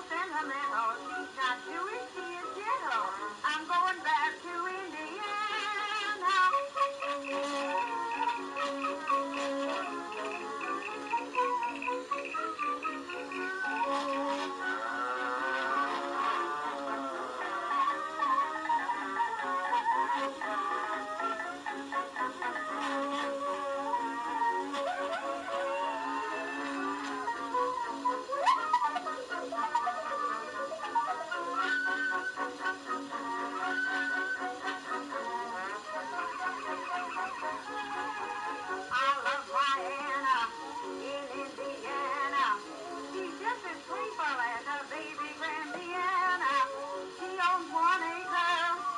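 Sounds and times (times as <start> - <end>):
instrumental accompaniment: 0.0 - 48.9
old popular song recording: 0.0 - 48.9
woman singing with vibrato: 0.0 - 48.9.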